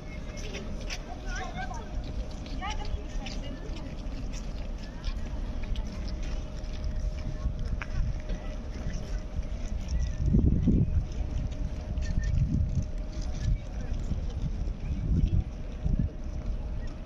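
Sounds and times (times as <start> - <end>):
indistinct talk of passers-by: 0.0 - 17.0
low rumble on microphone: 0.0 - 17.0.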